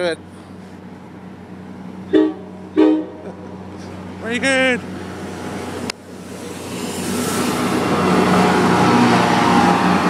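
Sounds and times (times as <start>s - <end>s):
train horn beeps: 2.1s - 3.2s.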